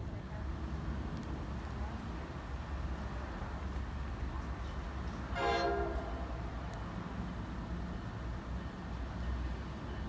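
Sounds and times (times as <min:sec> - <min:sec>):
train horn blast: 0:05.3 - 0:06.4.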